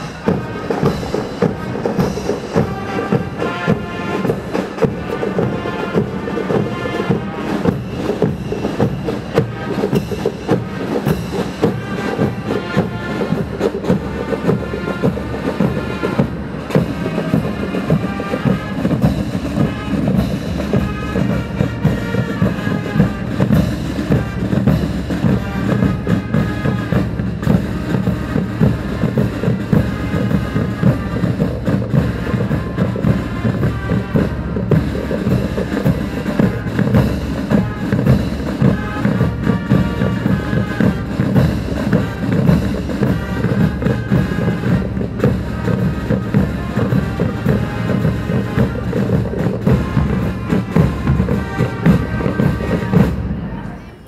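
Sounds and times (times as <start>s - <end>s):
marching snare and bass drums: 0.0s - 53.6s
fanfare trumpets: 0.0s - 54.0s.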